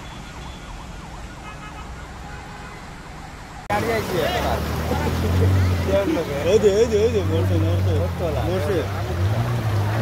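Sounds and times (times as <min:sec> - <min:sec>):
faint siren wailing: 0:00.0 - 0:03.7
background rush: 0:00.9 - 0:10.0.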